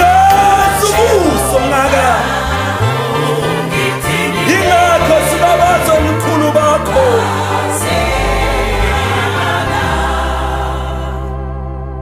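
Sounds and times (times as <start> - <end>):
sliding bass line: 0.0 - 11.3
gospel choir singing: 0.0 - 12.0.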